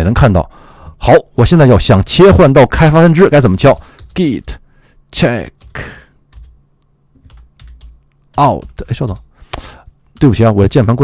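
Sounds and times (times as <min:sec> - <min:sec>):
computer keyboard keystrokes: 0:03.8 - 0:04.6, 0:05.6 - 0:06.6, 0:07.2 - 0:10.5.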